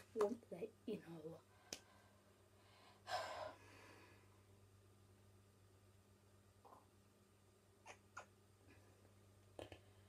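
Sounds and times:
faint steady hum: 0.0 - 10.0
boy breathing: 1.5 - 4.5.

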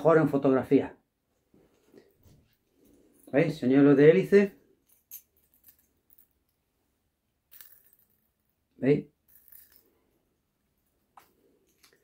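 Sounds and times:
metallic jingling of fishing lure: 4.8 - 6.6, 7.5 - 8.4, 9.3 - 10.1.

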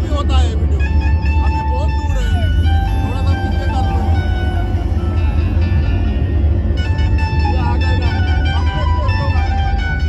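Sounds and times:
sliding melody line: 0.6 - 10.0.

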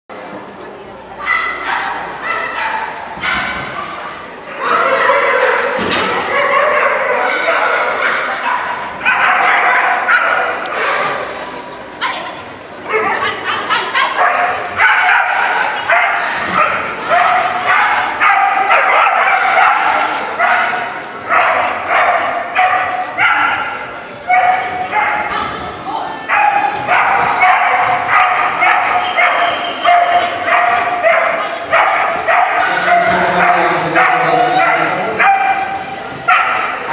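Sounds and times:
voices echoing in hall: 0.1 - 36.9
dog barking high-pitched: 1.2 - 4.0, 6.3 - 11.2, 14.0 - 25.4, 26.3 - 36.9.

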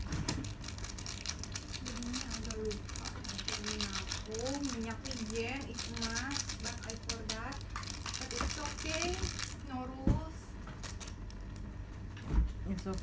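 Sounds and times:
woman's voice: 1.8 - 10.6, 12.6 - 13.0.

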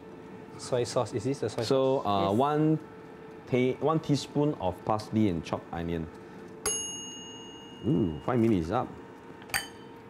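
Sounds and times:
timer bell ding: 6.6 - 8.8.

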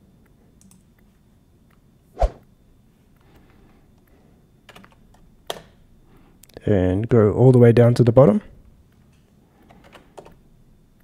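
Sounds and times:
computer keyboard key clicks: 0.6 - 1.0.

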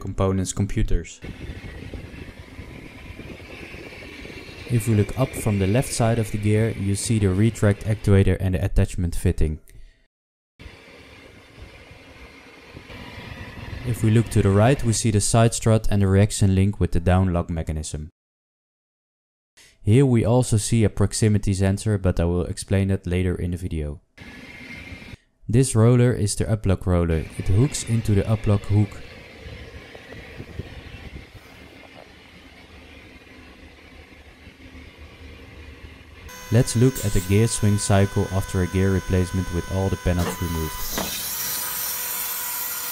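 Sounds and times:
machinery hum with faint whine: 1.2 - 8.3, 10.6 - 14.9, 27.1 - 41.8
thin hum: 34.2 - 41.2.

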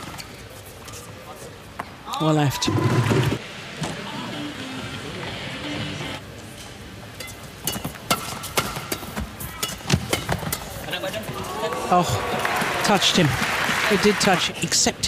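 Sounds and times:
racket hitting shuttlecock: 7.2 - 10.7.

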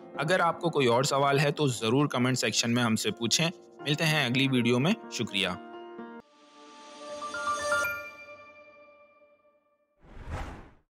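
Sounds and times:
whoosh sound effect: 10.1 - 10.8.

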